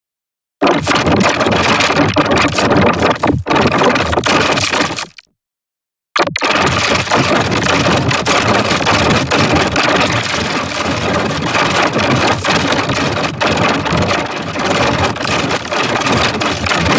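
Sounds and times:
harsh distorted noise with crackles: 0.6s - 5.2s, 6.2s - 16.9s.

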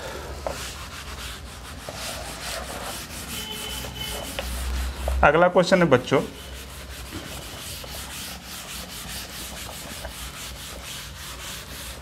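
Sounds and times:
duster scrubbing chalkboard: 0.0s - 12.0s.

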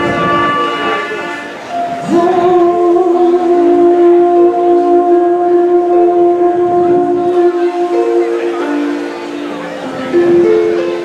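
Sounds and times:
harmonica playing chords: 0.0s - 11.0s.

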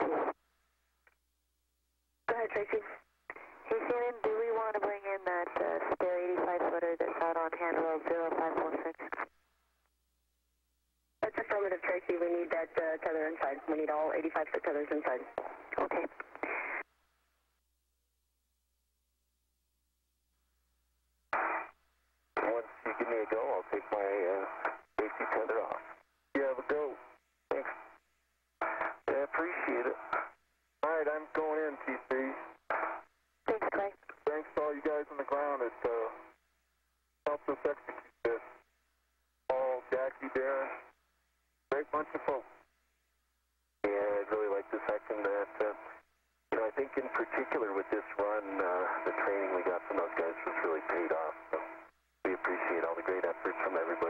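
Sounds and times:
radio voices transmitting: 0.0s - 0.4s, 2.3s - 9.3s, 11.2s - 16.9s, 22.4s - 27.9s, 28.6s - 36.4s, 37.3s - 38.6s, 39.5s - 40.9s, 41.7s - 42.6s, 43.8s - 54.0s.

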